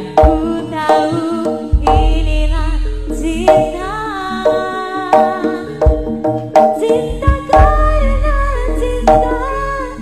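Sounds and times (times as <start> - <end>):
gliding vocal melody: 0.0 - 5.9
gamelan music: 0.0 - 10.0.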